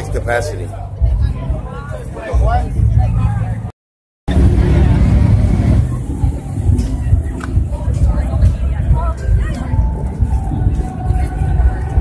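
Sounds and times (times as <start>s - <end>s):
faint crowd voices: 0.0s - 3.7s, 4.3s - 12.0s
low city rumble: 4.3s - 12.0s.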